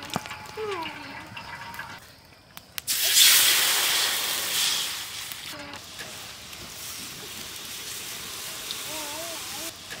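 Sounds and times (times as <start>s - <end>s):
water hissing on hot wok: 2.9s - 10.0s.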